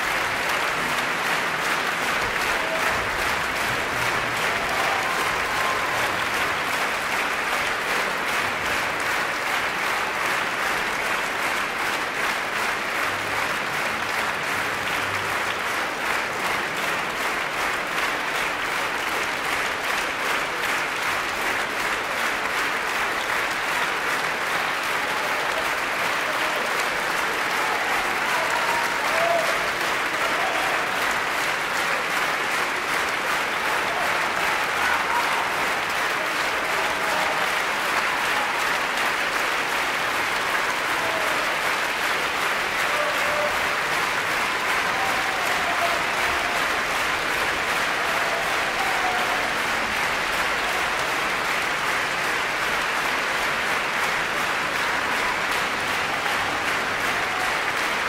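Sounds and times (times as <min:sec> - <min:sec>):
audience applauding: 0:00.0 - 0:58.0.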